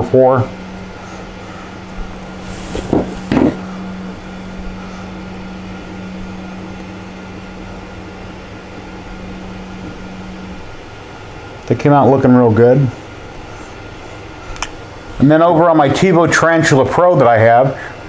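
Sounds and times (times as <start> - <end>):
mechanical fan hum: 0.0 - 18.0.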